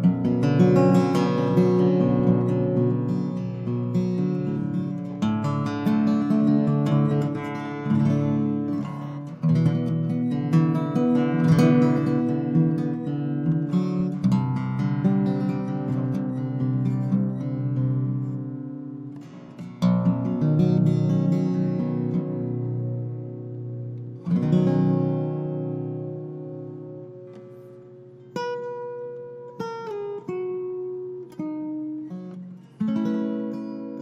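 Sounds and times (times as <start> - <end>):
solo guitar notes and chords: 0.0 - 34.0.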